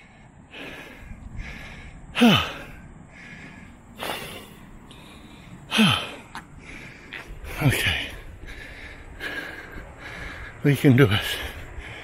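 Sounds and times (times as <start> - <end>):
sighing exhales: 0.0 - 10.6
man breathing hard: 0.0 - 12.0.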